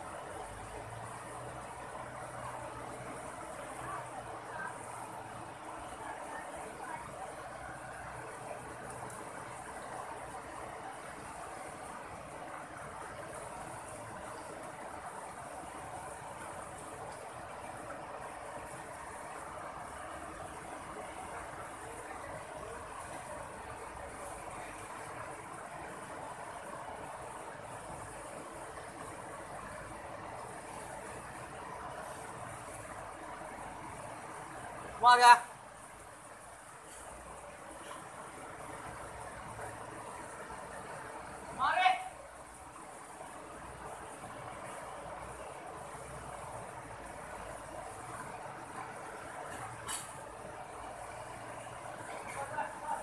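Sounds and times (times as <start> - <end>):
river rushing over rocks: 0.0 - 53.0.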